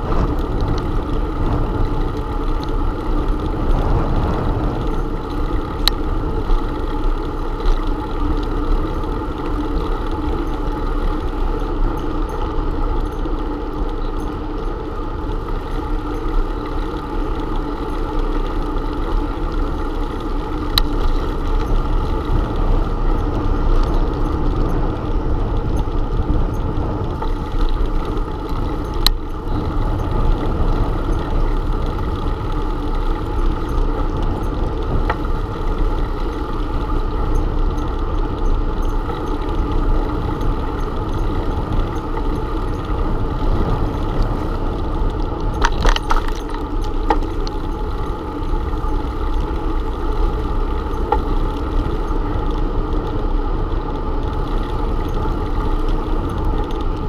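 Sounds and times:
bicycle road rumble: 0:00.0 - 0:57.0
wind: 0:00.0 - 0:57.0.

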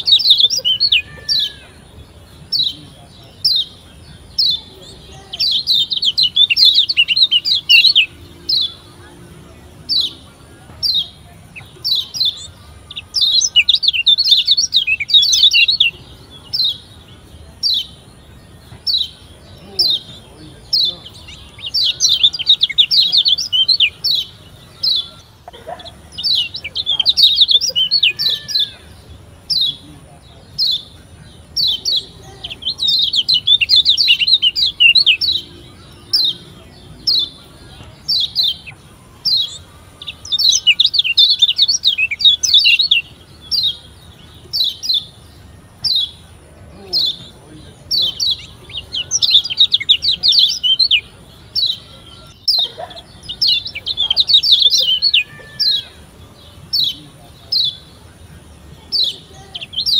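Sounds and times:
bird chattering trills: 0:00.0 - 0:59.9.

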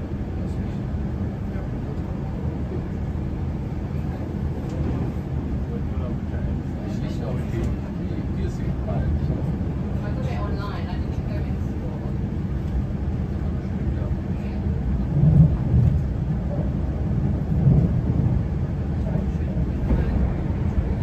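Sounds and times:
train rumble from inside carriage: 0:00.0 - 0:21.0.

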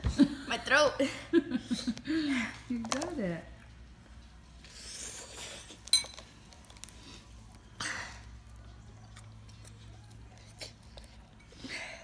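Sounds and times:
fork clinking against ceramic bowl: 0:05.9 - 0:06.2.

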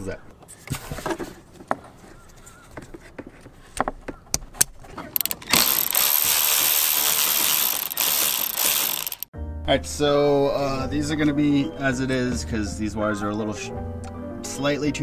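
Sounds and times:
cordless electric ratchet running: 0:05.2 - 0:09.3.

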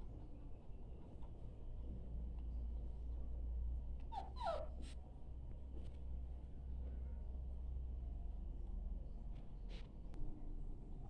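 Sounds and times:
puppy whimpering: 0:04.1 - 0:04.8.

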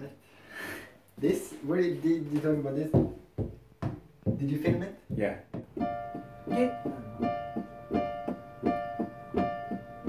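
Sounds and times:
electric keyboard repeated chord: 0:05.7 - 0:10.0.

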